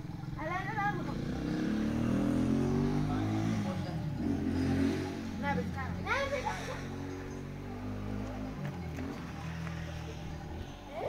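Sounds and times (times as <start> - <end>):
motor engine running: 0.0 - 11.0.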